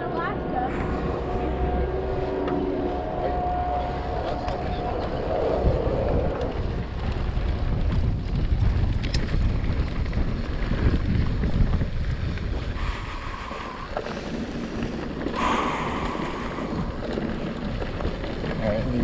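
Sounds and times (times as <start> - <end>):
steady hum: 0.0 - 8.0, 12.8 - 17.9
bike tyre noise on dirt: 0.0 - 19.0
wind buffeting microphone: 0.0 - 19.0.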